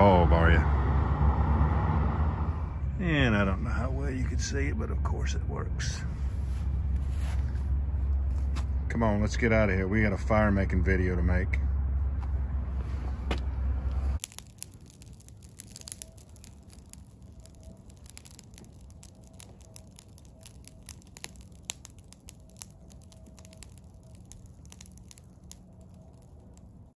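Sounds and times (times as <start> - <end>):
loud low rumble: 0.0 - 14.2
wood fire crackling and popping: 14.0 - 27.0.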